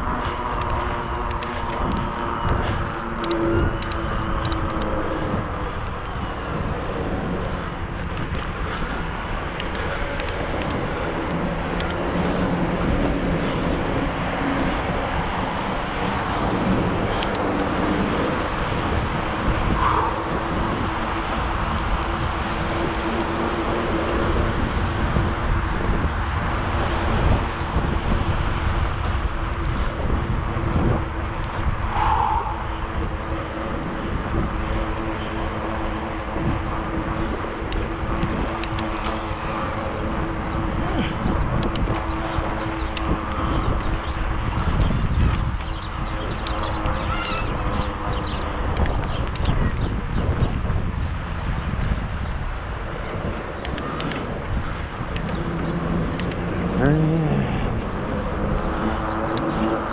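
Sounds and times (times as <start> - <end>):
bicycle tyres rolling on pavement: 0.0 - 59.9
wind on camera microphone: 0.0 - 59.9.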